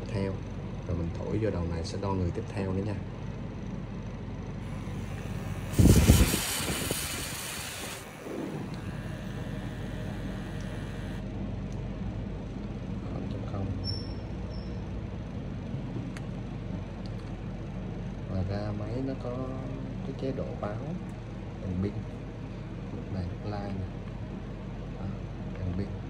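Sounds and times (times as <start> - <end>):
person blowing into breathalyzer: 4.7 - 11.2
faint steady tone: 7.5 - 11.2.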